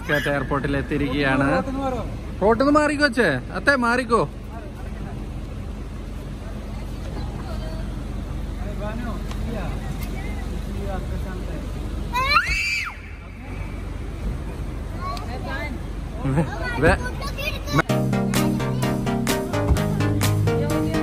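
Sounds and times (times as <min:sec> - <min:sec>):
child squealing: 0:00.0 - 0:00.7, 0:12.1 - 0:13.2
low rumble of traffic: 0:00.0 - 0:21.0.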